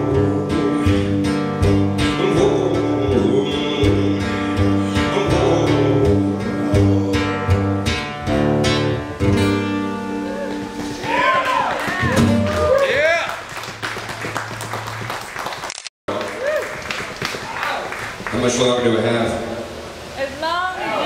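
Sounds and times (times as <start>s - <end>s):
guitar strumming chords: 0.0s - 12.6s.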